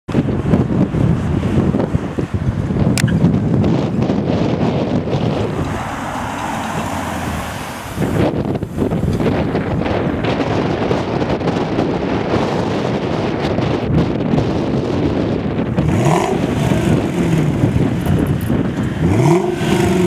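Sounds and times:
wind buffeting microphone: 0:00.1 - 0:20.0
car driving past: 0:05.3 - 0:08.5.

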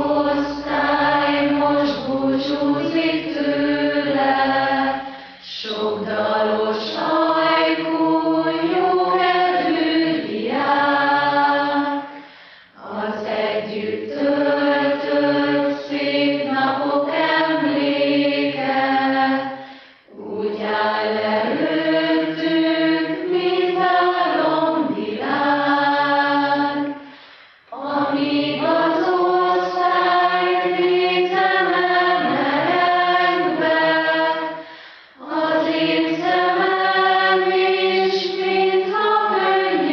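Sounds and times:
choir singing: 0:00.0 - 0:12.2, 0:12.8 - 0:27.1, 0:27.7 - 0:39.9.

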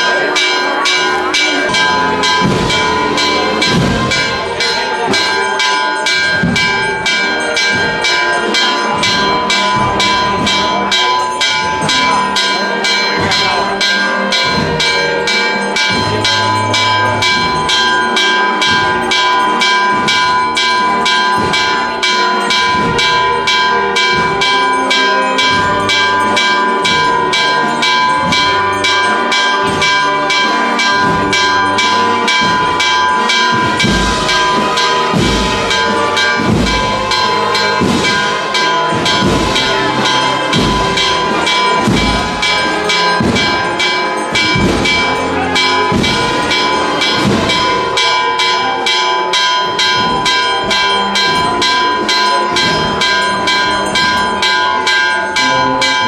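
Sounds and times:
church bells pealing: 0:00.0 - 0:56.0.

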